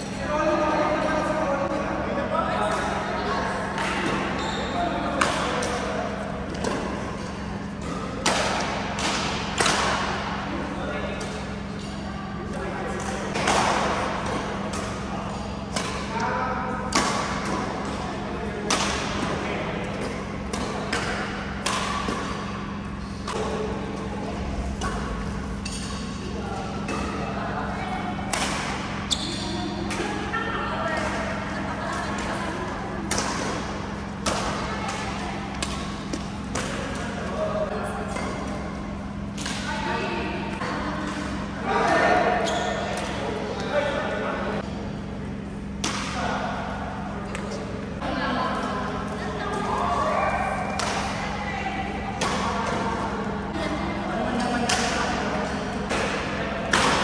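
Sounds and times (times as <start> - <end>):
background chatter: 0.0 - 57.0
rackets striking shuttlecock: 18.6 - 23.7, 24.6 - 27.3, 28.2 - 29.2, 33.1 - 37.2, 55.8 - 57.0.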